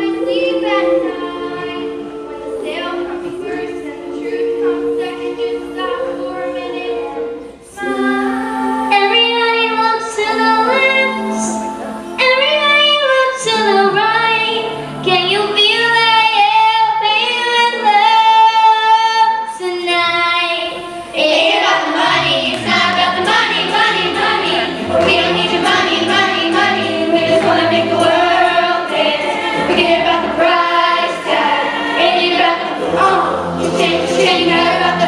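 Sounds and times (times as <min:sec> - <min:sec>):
girls singing together: 0:00.0 - 0:35.0.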